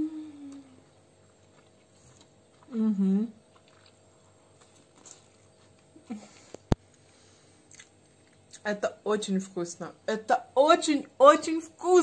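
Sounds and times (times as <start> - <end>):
closed-mouth hum: 0.0 - 9.1
person chewing: 0.5 - 8.6.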